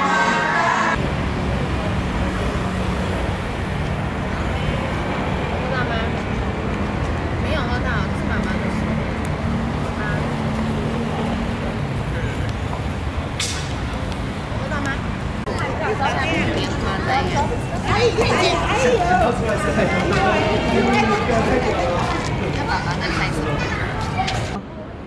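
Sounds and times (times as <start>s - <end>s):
motor vehicles rumbling: 0.9s - 25.0s
faint voices: 14.4s - 25.0s.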